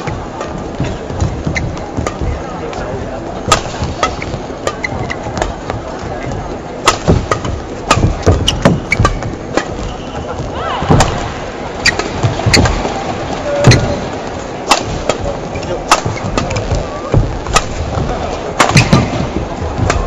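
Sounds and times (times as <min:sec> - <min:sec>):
rackets hitting shuttlecock: 0:00.0 - 0:02.4, 0:03.4 - 0:14.0, 0:14.6 - 0:20.0
crowd murmur: 0:00.0 - 0:20.0
footwork on court mat: 0:00.0 - 0:20.0.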